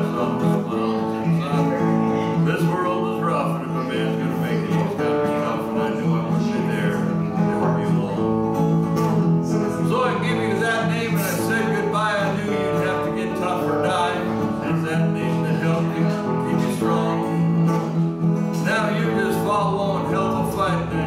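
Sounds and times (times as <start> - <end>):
man singing: 0.0 - 8.4, 9.5 - 21.0
acoustic guitar strumming: 0.0 - 21.0.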